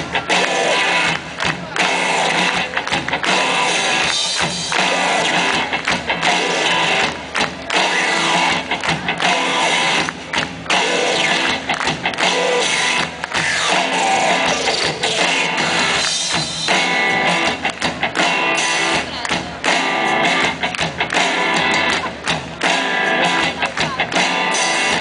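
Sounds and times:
live pop band playing: 0.0 - 25.0.

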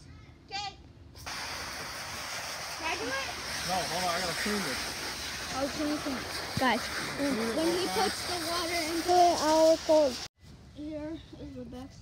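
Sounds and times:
garden hose spraying water: 1.2 - 10.4.

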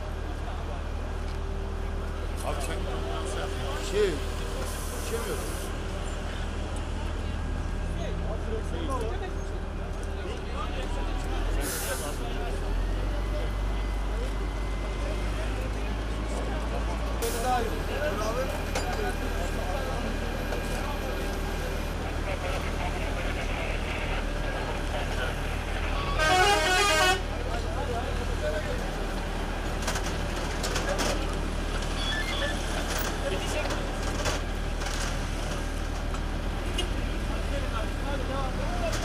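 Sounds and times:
hum of engines and traffic: 0.0 - 39.0
vehicle horn: 26.0 - 27.4.

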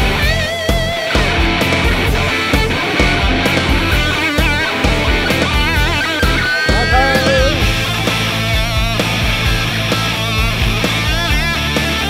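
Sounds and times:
drums and bass backing: 0.0 - 12.0
electric guitar lead line: 0.0 - 12.0.

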